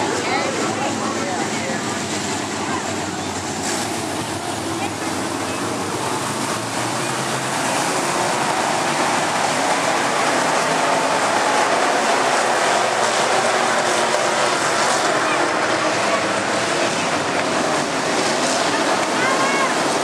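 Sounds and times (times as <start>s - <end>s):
race car engines: 0.0s - 20.0s.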